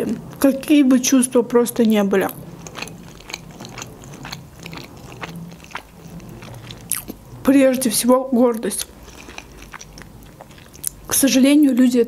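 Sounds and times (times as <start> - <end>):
woman chewing with wet clicks: 0.0 - 0.7, 1.7 - 11.7.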